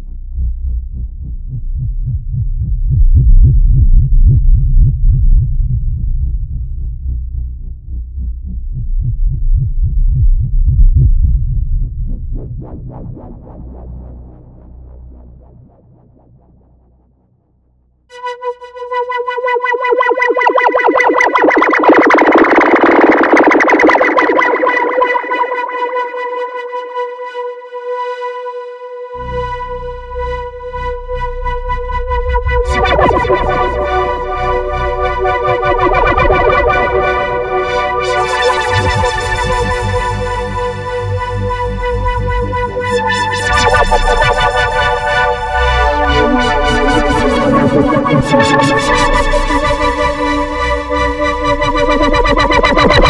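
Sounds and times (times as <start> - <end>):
synth bass: 0.0 - 53.0
synthesizer held note: 18.1 - 26.4, 29.2 - 53.0
synthesizer notes and chords: 18.1 - 53.0.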